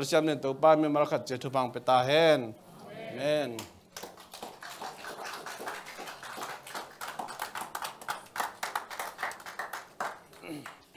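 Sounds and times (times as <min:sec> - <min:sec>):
audience clapping: 0:03.6 - 0:10.9.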